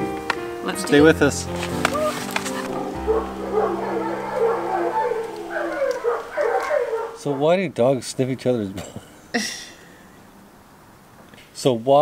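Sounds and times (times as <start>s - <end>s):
held low chord: 0.6s - 7.2s
dog whining and howling: 1.9s - 7.4s.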